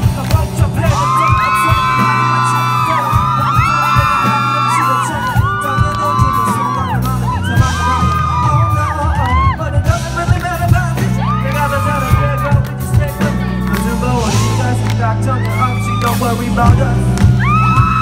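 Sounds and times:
live pop band music: 0:00.0 - 0:18.0.

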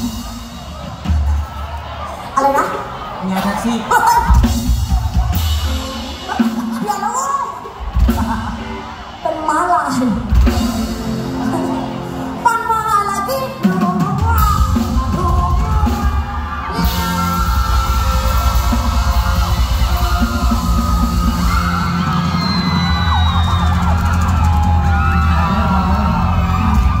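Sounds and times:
audience yelling and whooping: 0:00.0 - 0:27.0
live band dance music: 0:00.0 - 0:27.0.

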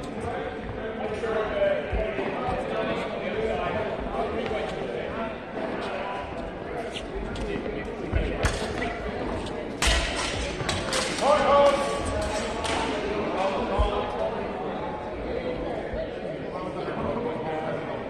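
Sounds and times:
voices echoing in hall: 0:00.0 - 0:18.0.

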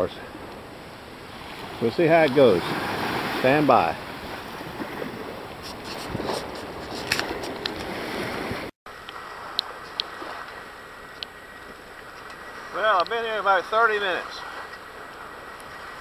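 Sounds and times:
small waves washing on beach: 0:00.0 - 0:16.0.

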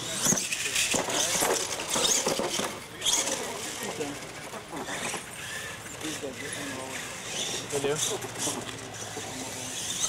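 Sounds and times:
people talking indistinctly: 0:00.0 - 0:10.0
rc truck running on dirt: 0:00.0 - 0:10.0.

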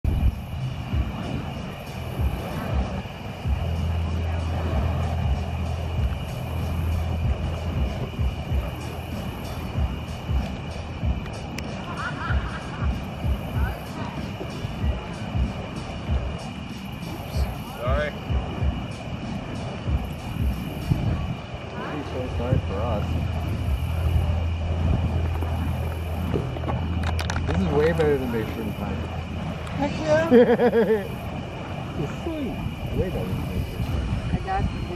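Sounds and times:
fire poi whooshing: 0:00.0 - 0:34.9
low rumble: 0:00.0 - 0:34.9.

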